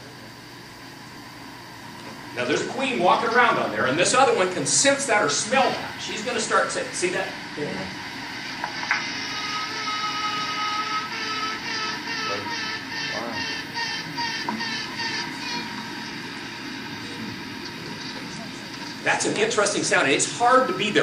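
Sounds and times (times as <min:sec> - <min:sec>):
queen bee piping: 0:09.4 - 0:17.2.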